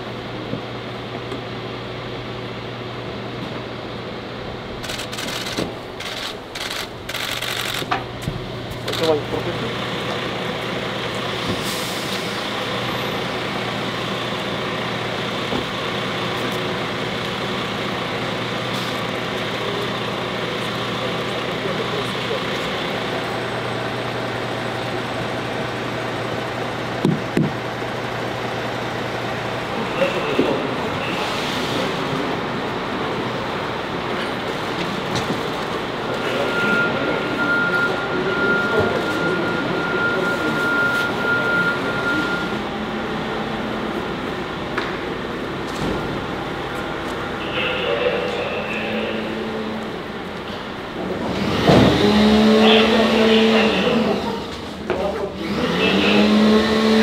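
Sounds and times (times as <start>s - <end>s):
vehicle engine hum: 0.0s - 57.0s
indistinct voices: 29.6s - 43.3s, 46.2s - 57.0s
steady high tone: 36.0s - 43.6s, 47.2s - 50.8s.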